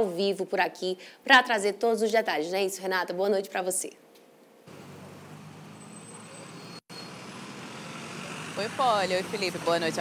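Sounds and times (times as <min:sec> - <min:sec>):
road traffic noise: 0:04.6 - 0:10.0.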